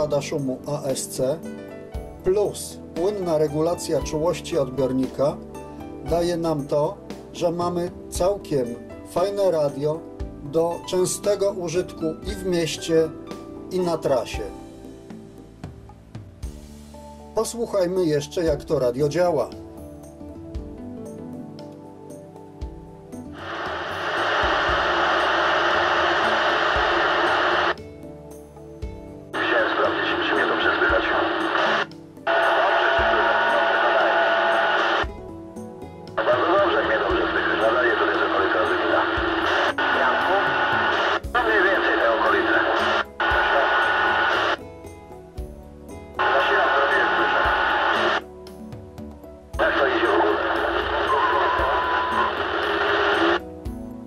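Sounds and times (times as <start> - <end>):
radio voice transmissions: 23.4 - 27.8, 29.4 - 35.1, 36.2 - 44.6, 46.2 - 48.2, 49.6 - 53.4.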